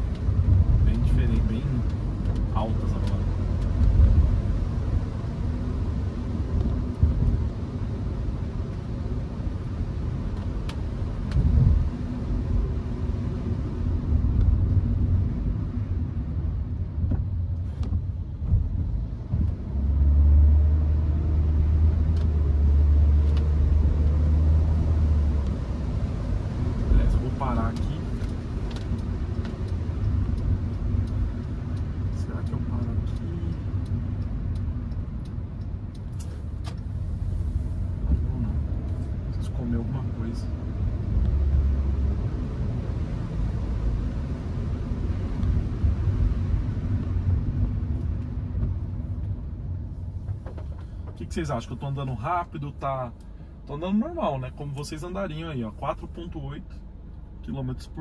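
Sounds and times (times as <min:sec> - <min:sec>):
car engine and road rumble: 0:00.0 - 0:58.0.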